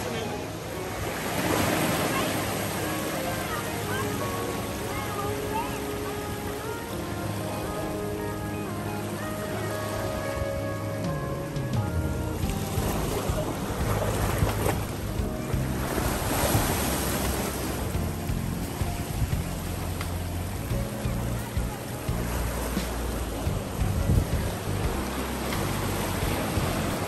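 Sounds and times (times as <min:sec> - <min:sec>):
surf breaking on rocks: 0:00.0 - 0:08.2, 0:11.8 - 0:20.9
background music with held notes: 0:00.0 - 0:27.0.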